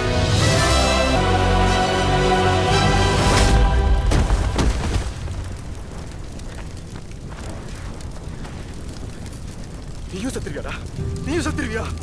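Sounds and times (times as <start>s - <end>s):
low rumble of fire: 0.0s - 12.0s.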